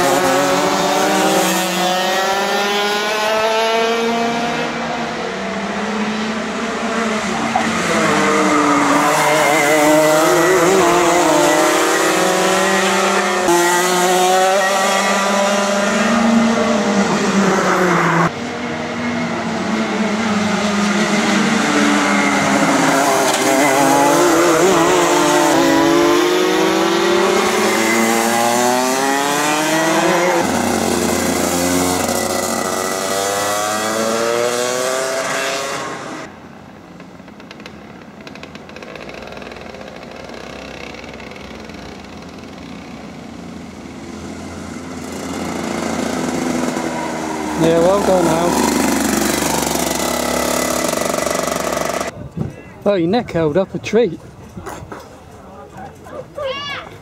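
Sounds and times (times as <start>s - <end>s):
racing kart engines revving: 0.0s - 52.2s.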